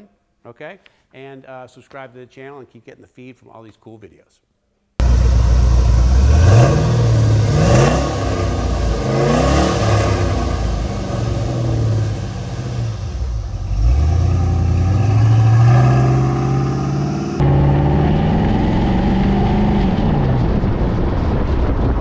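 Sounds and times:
truck engine revving: 5.0s - 21.6s.

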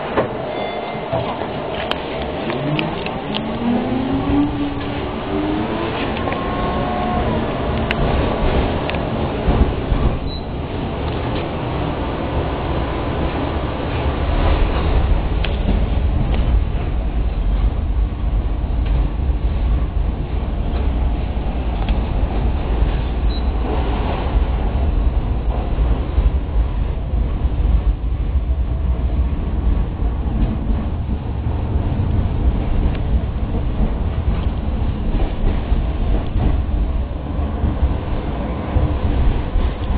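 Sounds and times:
tram wheels rumbling on rail: 0.0s - 39.9s.

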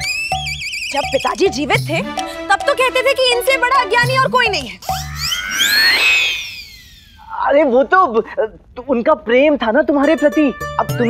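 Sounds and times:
synthesized tone sweep: 4.8s - 7.3s.

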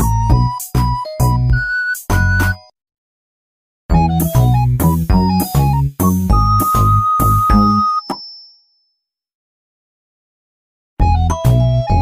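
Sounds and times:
doorbell ding: 6.6s - 8.9s.

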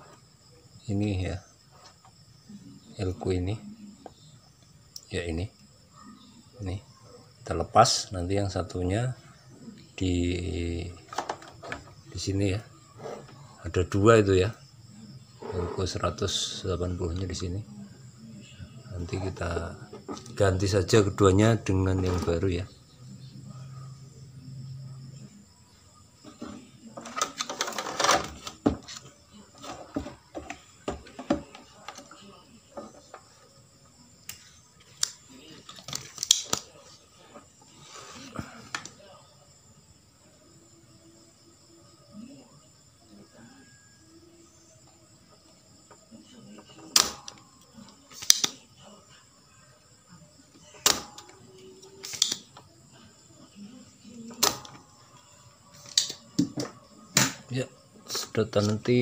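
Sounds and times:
desoldering pump snaps: 35.9s - 36.6s, 46.9s - 47.3s, 48.1s - 48.6s, 52.0s - 52.4s.

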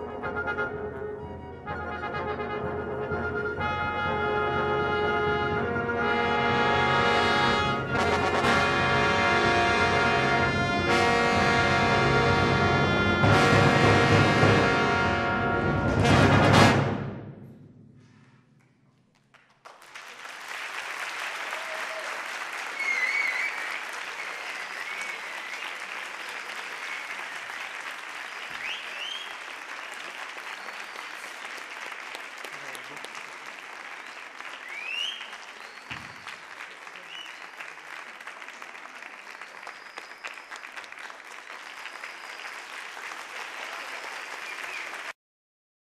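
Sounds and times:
audience applauding: 19.2s - 45.2s
audience cheering: 20.0s - 45.2s.

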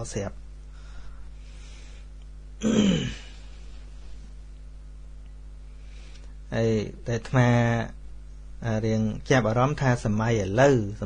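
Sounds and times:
man clearing his throat: 2.6s - 3.4s.

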